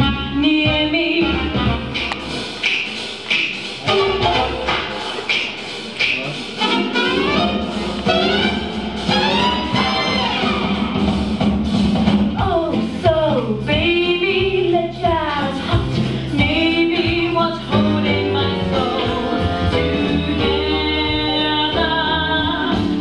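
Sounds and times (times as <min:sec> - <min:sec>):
jazz stage music with brass: 0:00.0 - 0:23.0.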